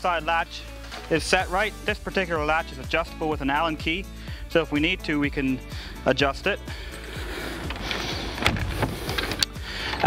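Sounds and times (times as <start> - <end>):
wooden door pushed shut: 7.7 - 9.4
door latch clicking: 7.7 - 9.6.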